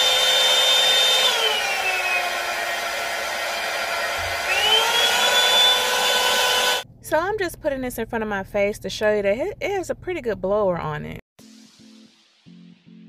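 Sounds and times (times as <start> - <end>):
hair dryer fan motor whining: 0.0 - 6.8.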